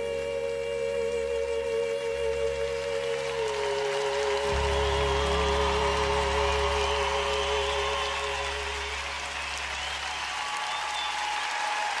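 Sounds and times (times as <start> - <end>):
held music chord: 0.0 - 9.8
large audience applauding: 1.8 - 12.0.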